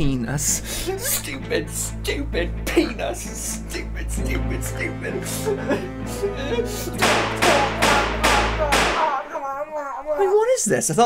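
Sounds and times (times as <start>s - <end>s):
sharp hit: 7.0s - 9.4s.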